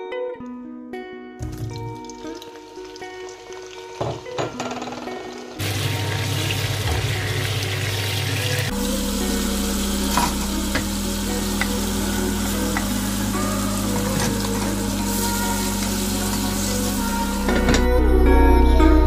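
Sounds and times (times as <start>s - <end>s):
background music: 0.0s - 19.0s
food sizzling in oil: 1.4s - 4.4s, 5.3s - 17.6s.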